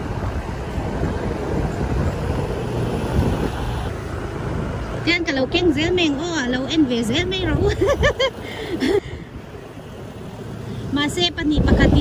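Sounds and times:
wind buffeting microphone: 0.0s - 10.2s, 11.0s - 12.0s
engine and road rumble: 0.0s - 12.0s.

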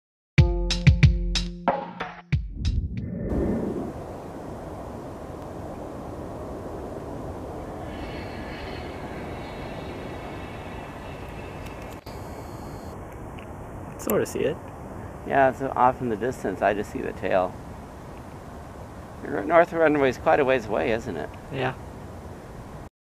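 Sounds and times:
high turbine whine: 2.6s - 22.9s
distant jet engines rushing: 2.7s - 22.9s.

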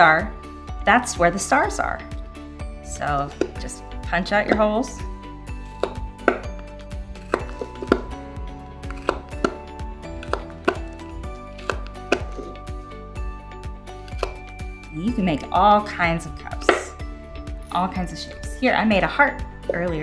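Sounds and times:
background music: 0.0s - 20.0s.

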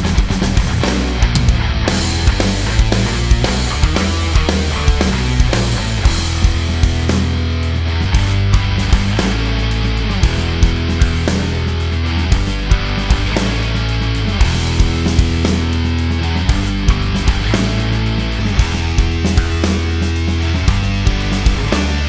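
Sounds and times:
acoustic drums: 0.0s - 22.0s
distorted rhythm guitar: 0.0s - 22.0s
electric bass: 0.0s - 22.0s.

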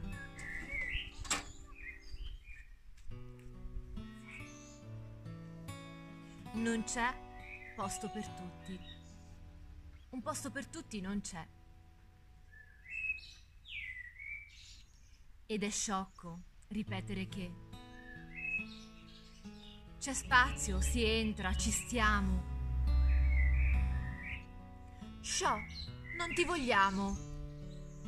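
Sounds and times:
guitar tune: 0.0s - 2.0s, 3.1s - 12.4s, 16.9s - 28.0s
bird whistling: 0.0s - 2.6s, 7.4s - 7.8s, 12.5s - 14.8s, 18.0s - 19.2s, 22.9s - 24.5s, 25.5s - 28.0s
small birds chirping: 0.0s - 3.1s, 4.1s - 5.0s, 6.3s - 11.1s, 12.3s - 16.5s, 17.7s - 28.0s.

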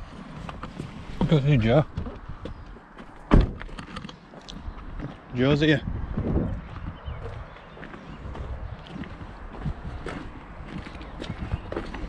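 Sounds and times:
car door slamming: 3.3s - 3.8s.

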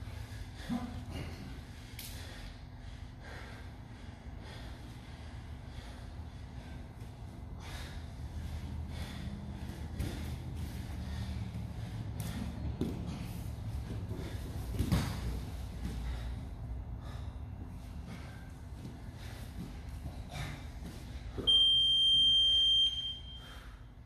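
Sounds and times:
heavy breathing: 0.0s - 21.4s
thumps on gym mats: 14.1s - 16.1s.

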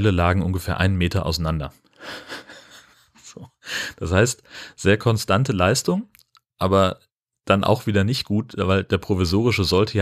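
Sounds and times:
man breathing: 1.9s - 4.8s.

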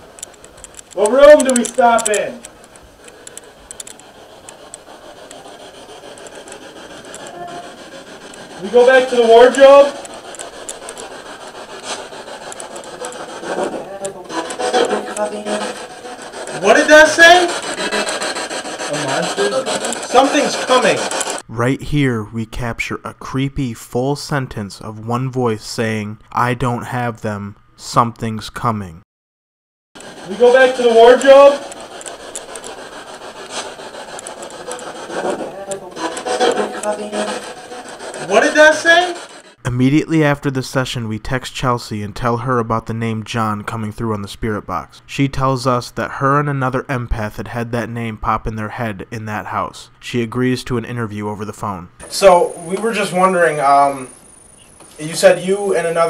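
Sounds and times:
radio clicks: 0.0s - 7.4s, 9.5s - 15.4s
radio static hiss: 0.0s - 21.4s, 30.0s - 39.6s, 52.0s - 56.0s
choppy voice fragments: 6.1s - 10.2s, 10.9s - 21.4s, 30.1s - 31.9s, 32.5s - 39.5s
radio static sweeping: 30.0s - 39.6s.

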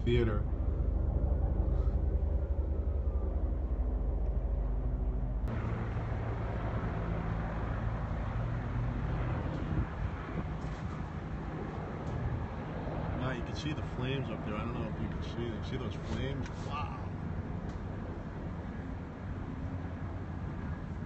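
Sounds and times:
low rumble: 0.0s - 13.2s
broad rushing noise: 0.0s - 17.3s
low engine drone: 0.0s - 21.0s.

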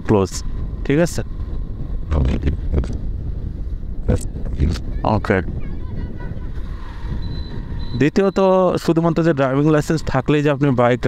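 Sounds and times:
motorcycle engine rumble: 0.0s - 11.0s
wind on microphone: 0.0s - 11.0s.

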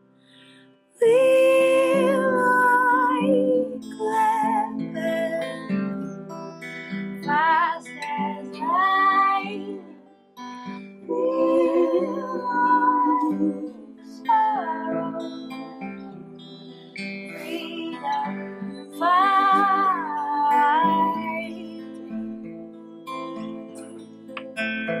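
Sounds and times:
high wavering melody: 11.1s - 24.4s.

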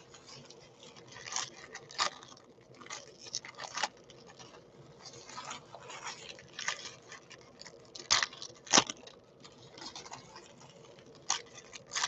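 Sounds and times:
foil wrappers crinkling and tearing: 0.0s - 12.0s.

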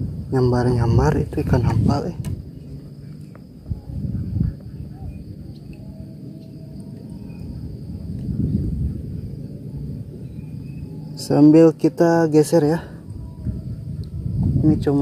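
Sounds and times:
insects droning: 0.0s - 15.0s
low uneven rumbling: 0.0s - 15.0s.

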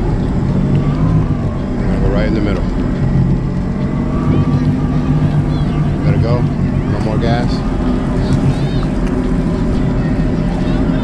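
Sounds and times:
jet ski engine idling: 0.0s - 11.0s
voices in background: 0.0s - 11.0s.

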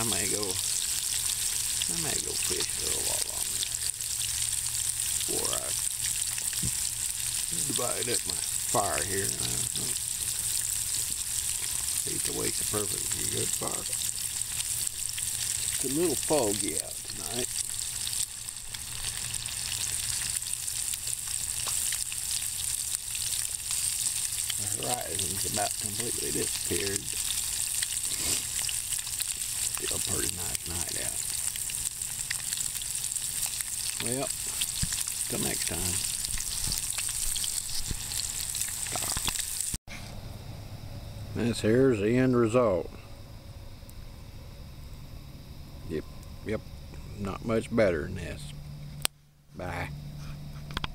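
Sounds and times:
low rumble and hiss: 0.0s - 38.7s, 39.9s - 50.9s
fish frying in hot oil: 0.0s - 39.8s.

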